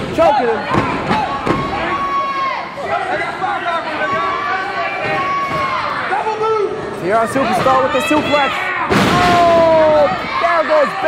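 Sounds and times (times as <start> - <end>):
spectators shouting and yelling: 0.0 - 11.0.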